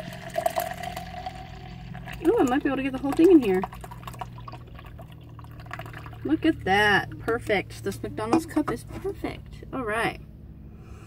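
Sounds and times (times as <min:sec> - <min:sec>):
drink pouring into plastic cup: 0:00.0 - 0:06.4.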